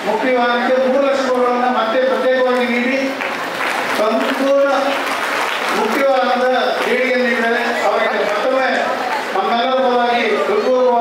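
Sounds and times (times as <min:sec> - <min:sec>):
audience applause: 0:02.5 - 0:09.4.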